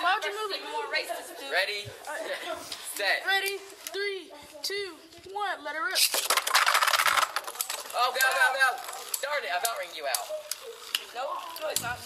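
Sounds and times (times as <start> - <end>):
spinning tops clattering: 5.9 - 11.9.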